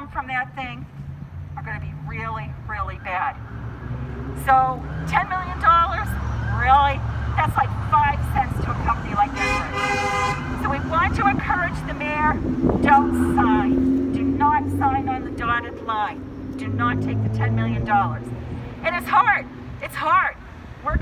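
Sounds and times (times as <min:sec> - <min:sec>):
people talking: 0:00.0 - 0:00.8, 0:01.6 - 0:03.4, 0:04.4 - 0:09.5, 0:10.6 - 0:21.0
car horn honking: 0:09.4 - 0:10.6.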